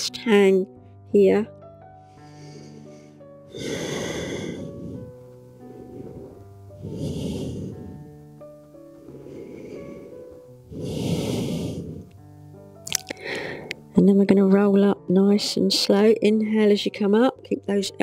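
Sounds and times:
soft background music: 0.0 - 18.0
woman breathing slowly: 1.8 - 13.9
mouth clicks: 12.8 - 13.8.

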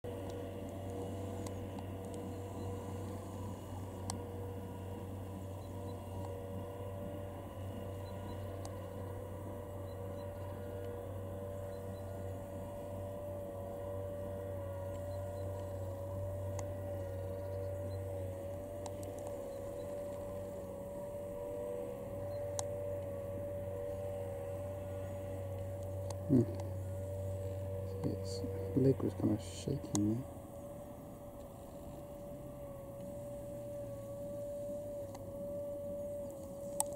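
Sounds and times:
low mechanical hum: 0.0 - 36.9
light clicks: 0.2 - 3.3, 3.9 - 4.3, 8.0 - 9.1, 14.8 - 20.7, 22.3 - 23.1, 29.7 - 30.2
faint wavering high tone: 2.1 - 7.0, 7.6 - 36.9.

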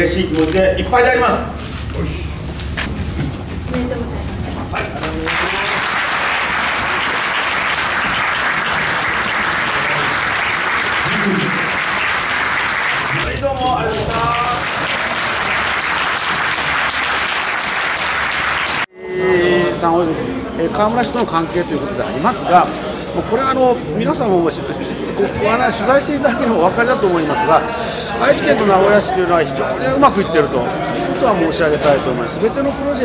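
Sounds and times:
crowd applauding: 4.7 - 18.9.

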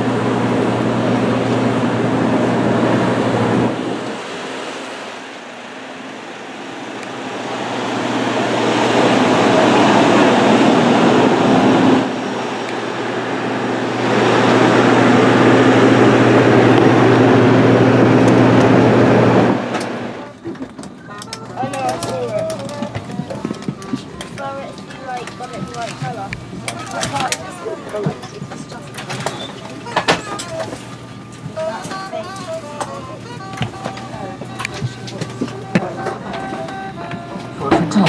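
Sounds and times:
low droning machinery hum: 0.0 - 38.0.

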